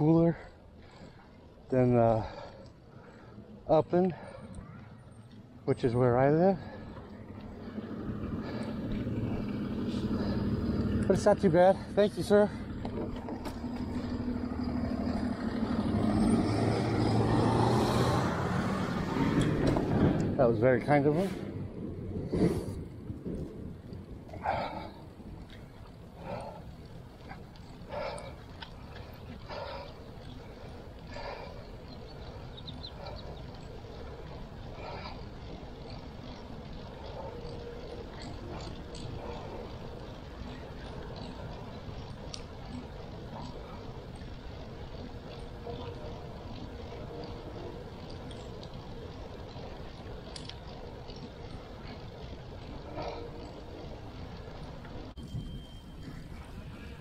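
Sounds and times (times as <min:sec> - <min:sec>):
wind and tyre rumble: 0:00.0 - 0:57.0.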